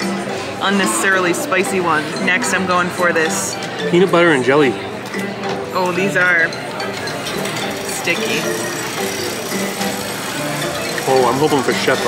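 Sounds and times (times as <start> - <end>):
held musical tones: 0.0 - 12.0.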